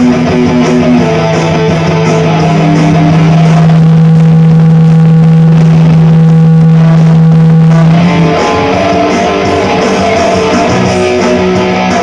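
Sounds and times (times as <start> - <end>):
electric guitar low note: 0.0 - 12.0.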